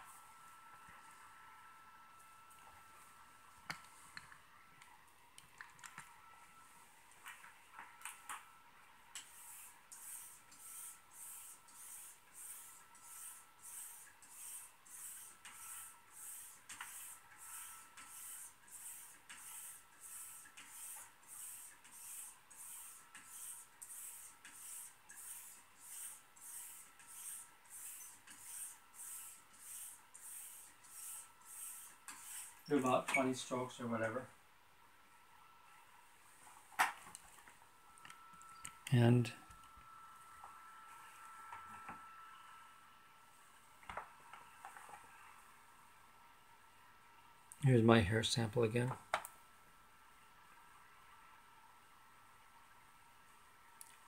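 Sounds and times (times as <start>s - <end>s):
razor swishing on strop: 9.2s - 32.6s.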